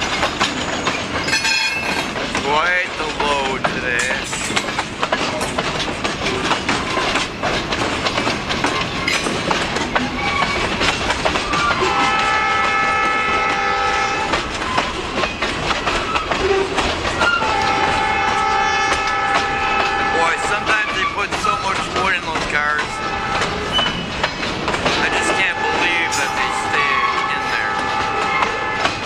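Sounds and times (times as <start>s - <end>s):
train wheels clacking over rail joints: 0.0s - 29.0s
train horn: 11.5s - 14.4s, 16.4s - 21.2s, 22.7s - 23.8s, 25.0s - 29.0s.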